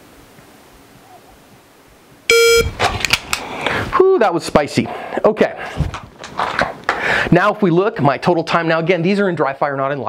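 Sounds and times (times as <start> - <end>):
short start beep: 2.3 - 2.7
clicks and rustles: 2.7 - 3.5, 5.8 - 7.0.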